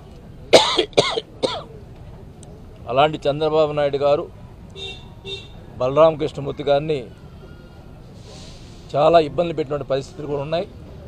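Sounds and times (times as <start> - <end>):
man coughing: 0.6 - 1.7.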